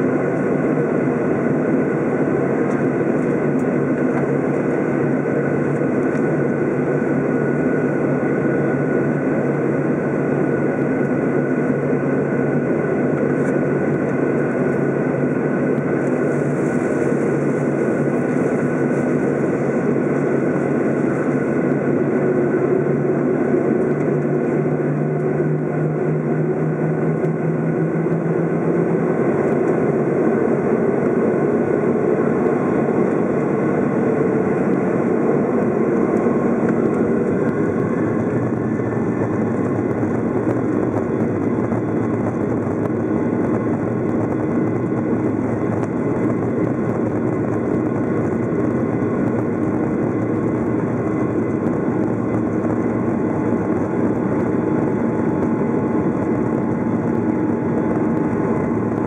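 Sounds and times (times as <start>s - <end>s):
jet engines heard from cabin: 0.0s - 59.0s.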